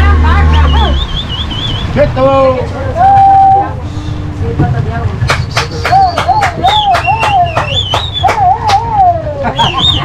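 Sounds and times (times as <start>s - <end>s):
waterbirds whistling calls: 0.5s - 2.1s, 5.3s - 10.0s.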